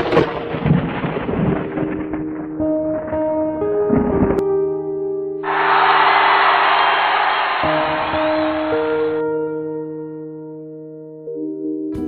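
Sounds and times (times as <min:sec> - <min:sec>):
thunder-like noisy rumble: 0:00.0 - 0:02.4.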